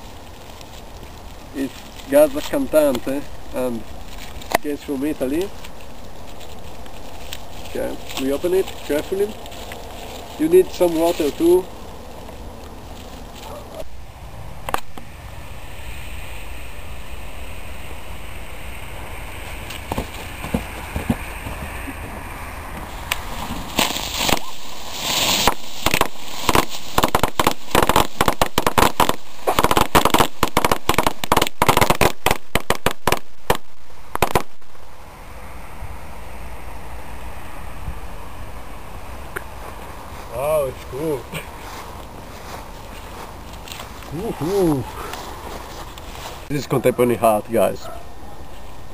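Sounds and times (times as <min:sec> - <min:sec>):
firework bangs and crackles: 0:23.0 - 0:34.6.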